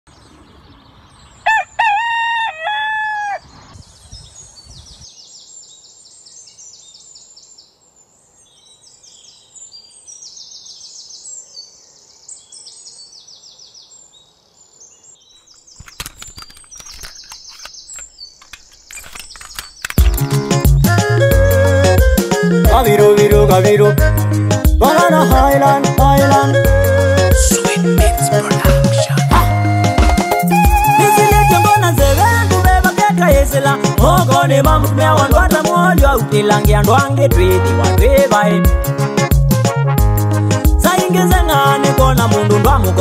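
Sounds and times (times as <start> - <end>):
small birds chirping: 0.1 - 1.5, 3.4 - 20.9
rooster crowing: 1.4 - 3.5
sharp clicks and knocks: 15.8 - 20.4.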